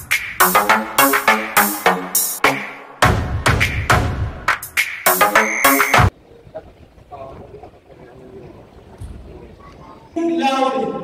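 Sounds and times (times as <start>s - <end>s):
electronic music: 0.0s - 6.1s
faint indistinct voices: 6.1s - 10.4s.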